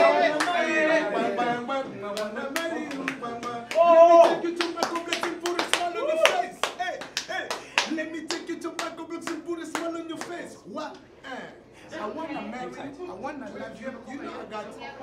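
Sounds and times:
man singing: 0.0 - 10.5
hand claps: 0.3 - 0.6, 2.2 - 10.4.

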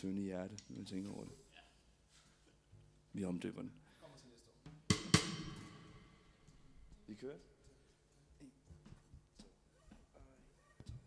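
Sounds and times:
drum hits: 4.7 - 7.0
cymbal crash: 4.9 - 6.8.

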